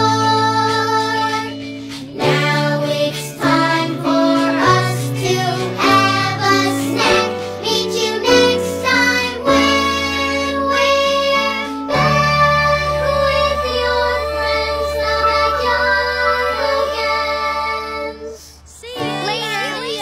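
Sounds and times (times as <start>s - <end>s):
upbeat instrumental backing: 0.0s - 18.4s
young voices singing: 0.0s - 20.0s.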